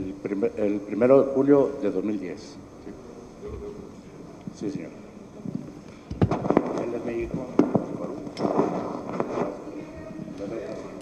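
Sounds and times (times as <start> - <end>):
indistinct voices in a room: 0.0 - 11.0.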